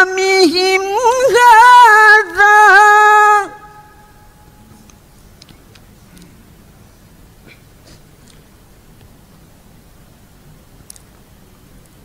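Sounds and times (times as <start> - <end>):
man reciting melodically: 0.0 - 4.6.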